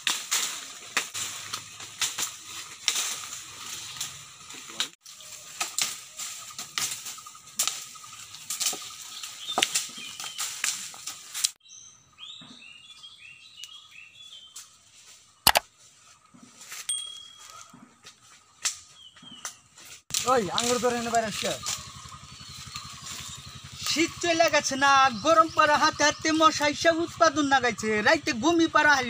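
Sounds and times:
leaves rustling: 0:00.0 - 0:11.6, 0:18.2 - 0:25.7
sticks beating leafy branches: 0:00.0 - 0:11.6, 0:18.6 - 0:25.0
bird chirps: 0:11.6 - 0:14.6, 0:18.6 - 0:19.7, 0:20.6 - 0:27.2.

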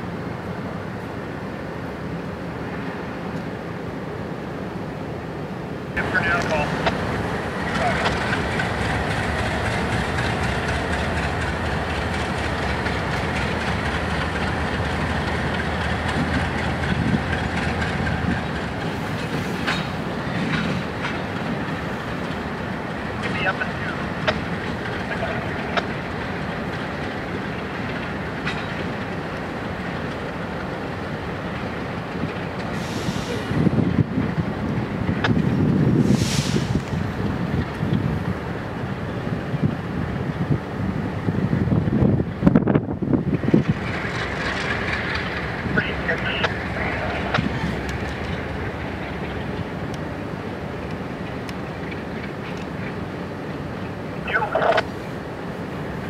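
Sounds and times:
diesel locomotive engines rumbling: 0:00.0 - 0:56.0.

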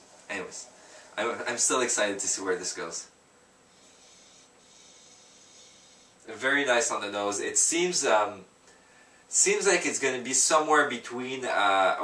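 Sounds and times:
faint sniffing through nose: 0:03.7 - 0:06.2.

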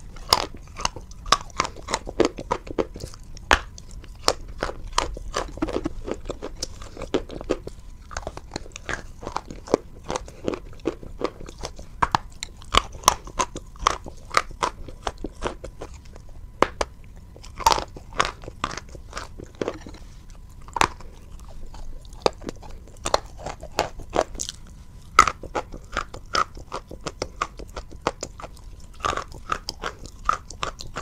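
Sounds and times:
chewing crunchy chalk: 0:00.0 - 0:31.0.

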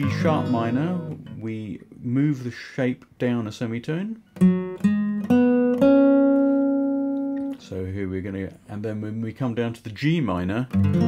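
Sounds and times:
plucked acoustic guitar notes: 0:00.0 - 0:01.6, 0:04.2 - 0:07.6, 0:10.7 - 0:11.0.

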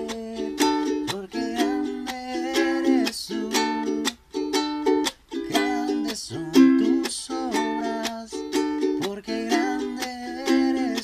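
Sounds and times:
ukulele strummed on chords: 0:00.0 - 0:11.0.

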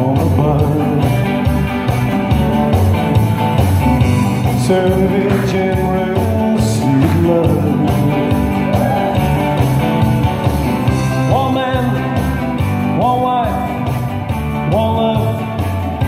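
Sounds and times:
man singing: 0:00.0 - 0:03.0, 0:03.7 - 0:16.0
bass and drum beat: 0:00.0 - 0:16.0
electric guitar: 0:00.0 - 0:16.0.

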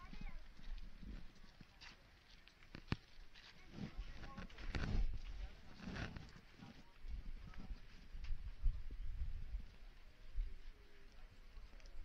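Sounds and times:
footsteps on earth path: 0:00.0 - 0:10.8
faint voices: 0:00.0 - 0:12.0.

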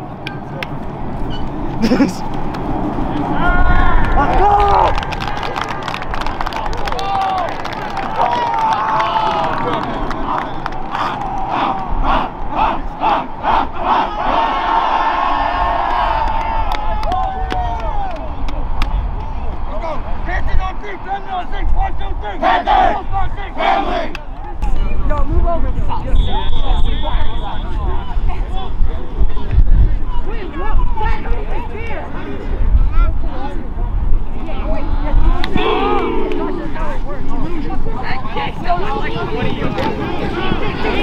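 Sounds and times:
players shouting in group cry: 0:06.8 - 0:18.2, 0:22.2 - 0:24.1, 0:35.4 - 0:36.5
high whistle: 0:26.1 - 0:27.8.

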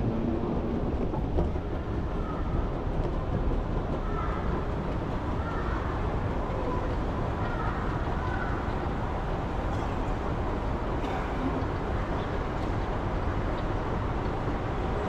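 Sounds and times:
low rumble in station hall: 0:00.0 - 0:15.0.

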